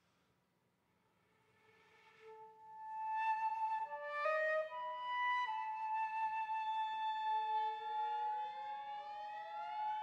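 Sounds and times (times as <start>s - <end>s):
flute holding long note: 2.4s - 10.0s.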